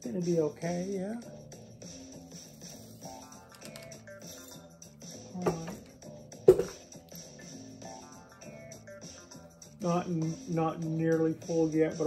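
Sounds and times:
plucked-string background music: 0:03.0 - 0:12.0.

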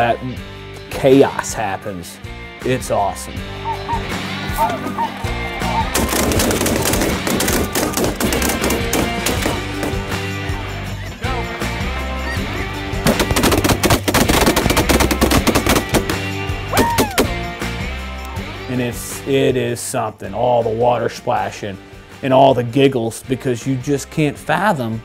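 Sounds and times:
background music: 0:00.0 - 0:25.0
geese calling: 0:03.6 - 0:06.1
rapid shotgun fire: 0:05.9 - 0:09.8, 0:13.0 - 0:16.3.

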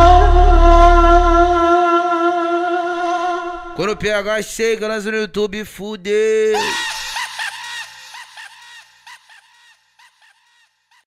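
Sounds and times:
low bass note: 0:00.0 - 0:02.0
high-pitched vocal snippet echoing: 0:00.0 - 0:04.4, 0:06.3 - 0:07.2.

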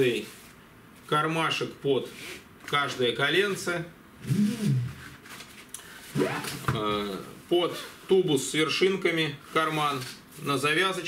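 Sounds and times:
man humming hesitantly: 0:04.2 - 0:05.0.

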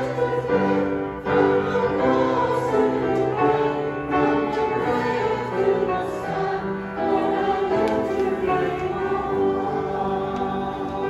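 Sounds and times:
voices singing a hymn: 0:00.0 - 0:11.0.

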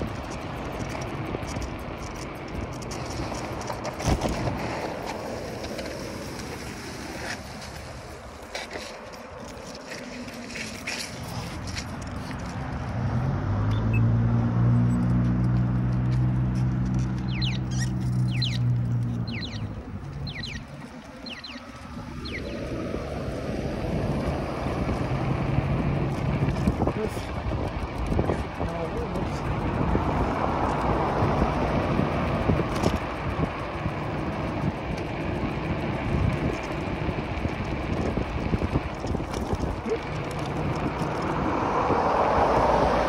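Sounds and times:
road noise: 0:00.0 - 0:43.0
wind rushing over microphone: 0:00.0 - 0:43.0
steady low hum: 0:14.3 - 0:43.0.

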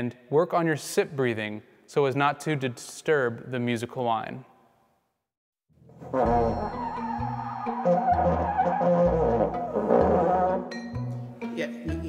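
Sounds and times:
low blaring trombone notes: 0:06.0 - 0:10.9.

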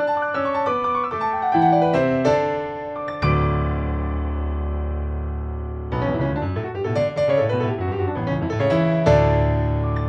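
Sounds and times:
grand piano playing quick notes: 0:00.0 - 0:10.0.

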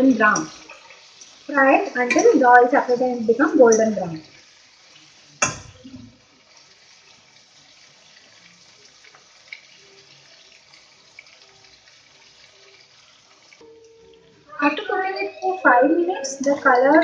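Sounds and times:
chicken frying in oil: 0:00.0 - 0:17.0
metal utensil clank: 0:02.0 - 0:02.4.

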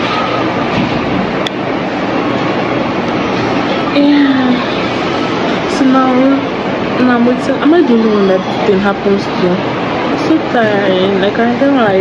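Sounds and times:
loud rushing noise: 0:00.0 - 0:12.0.

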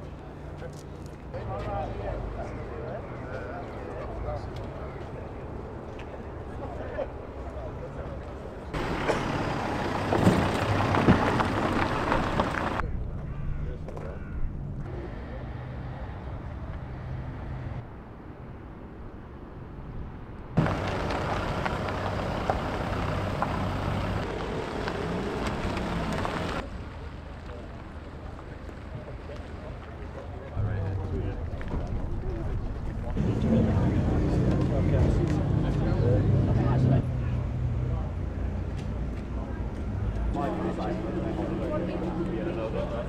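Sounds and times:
people talking: 0:00.0 - 0:11.3, 0:27.4 - 0:43.0
car engines running: 0:07.6 - 0:12.8, 0:20.6 - 0:43.0.

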